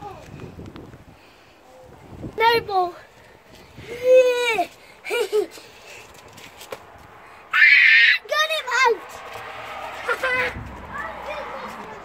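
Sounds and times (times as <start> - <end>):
child shrieking: 7.5 - 8.4.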